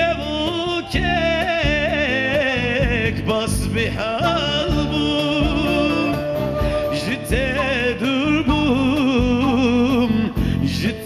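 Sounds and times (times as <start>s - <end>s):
instrumental accompaniment: 0.0s - 11.0s
man singing ornamented melody: 0.0s - 11.0s
wooden reed pipe: 4.2s - 10.0s.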